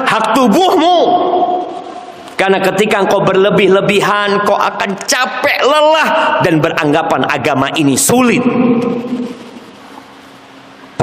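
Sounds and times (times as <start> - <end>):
man speaking: 0.0 - 1.8, 2.4 - 9.3
faint room hum: 0.0 - 11.0.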